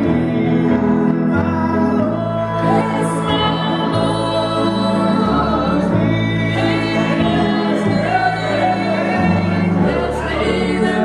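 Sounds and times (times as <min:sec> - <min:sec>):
grand piano accompaniment: 0:00.0 - 0:11.0
woman singing gospel: 0:01.6 - 0:11.0.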